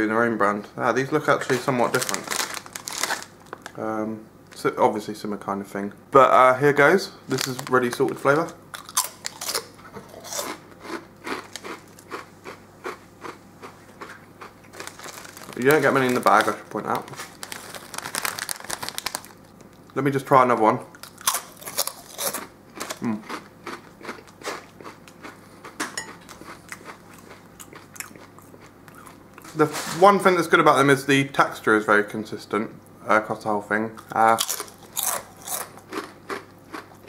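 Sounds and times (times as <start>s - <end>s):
person chewing crisps: 1.5s - 3.8s, 7.3s - 20.0s, 20.9s - 29.6s, 34.0s - 37.0s.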